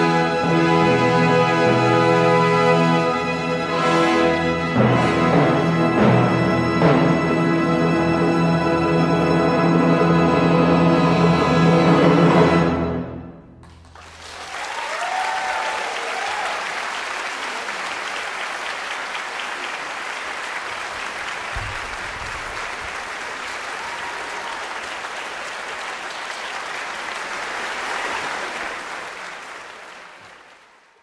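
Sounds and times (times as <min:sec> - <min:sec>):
audience applauding: 0:13.6 - 0:31.0.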